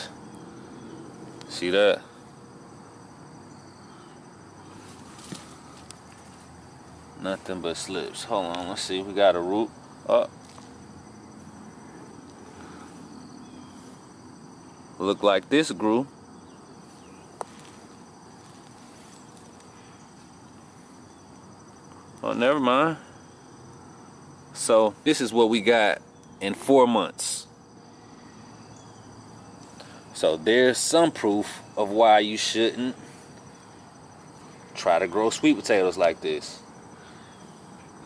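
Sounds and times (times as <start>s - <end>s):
insects chirping: 0.0s - 38.0s.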